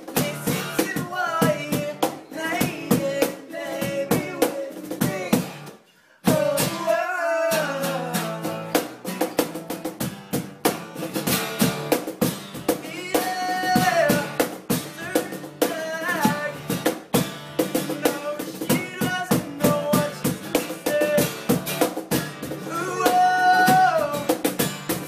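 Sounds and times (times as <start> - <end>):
cajon slapped by hand: 0.0 - 2.3, 8.7 - 25.0
young men singing: 0.0 - 5.6, 6.3 - 8.6, 12.8 - 16.6, 17.9 - 21.5, 22.6 - 24.5
acoustic guitar strumming: 0.0 - 25.0.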